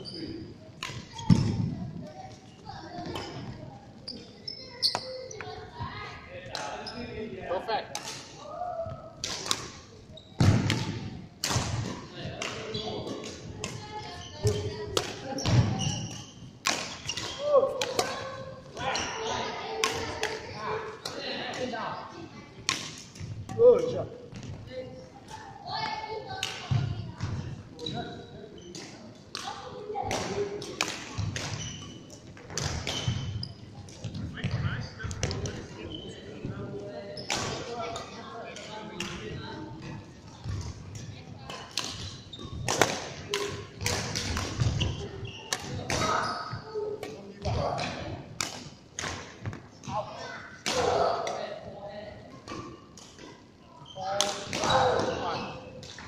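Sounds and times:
racket hitting shuttlecock: 14.4s - 18.4s, 41.7s - 44.9s.

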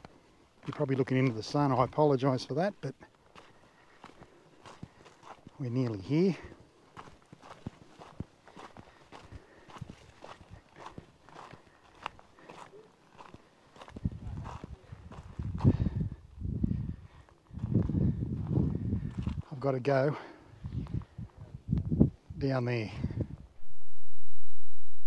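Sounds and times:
footsteps on rocky dirt track: 0.0s - 21.5s
wind buffeting microphone: 13.8s - 19.5s, 20.5s - 23.6s.

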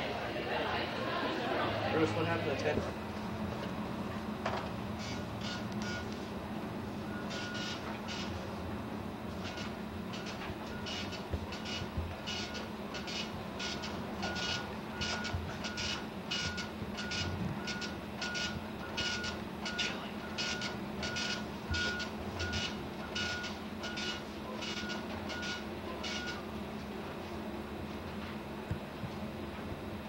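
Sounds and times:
steady low hum: 0.0s - 30.0s
electronic beeping: 5.0s - 6.1s, 9.4s - 26.4s.

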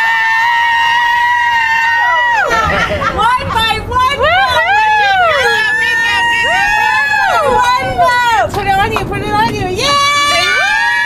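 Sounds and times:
women shrieking and whooping: 0.0s - 8.4s, 9.8s - 11.0s.

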